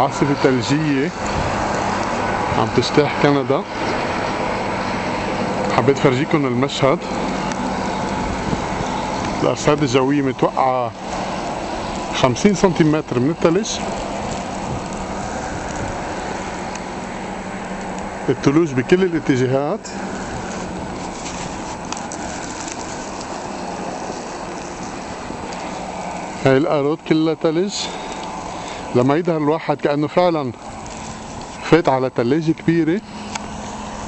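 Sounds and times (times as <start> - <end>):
blizzard wind rushing: 0.0 - 26.5
car driving through deep snow: 0.0 - 34.0.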